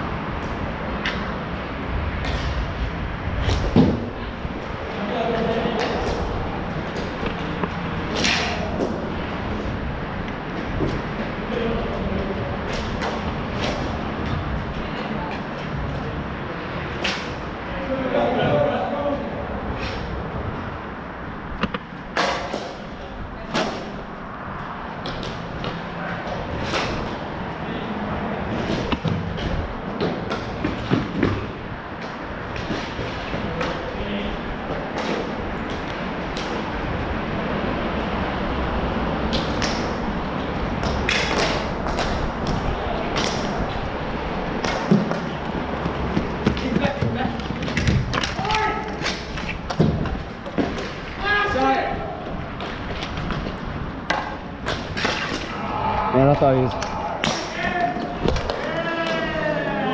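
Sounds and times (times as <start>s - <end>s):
steady rushing background: 0.0s - 17.8s, 19.2s - 59.8s
hockey sticks clacking ball: 5.3s - 9.0s, 28.5s - 37.0s, 39.2s - 55.6s, 56.6s - 59.4s.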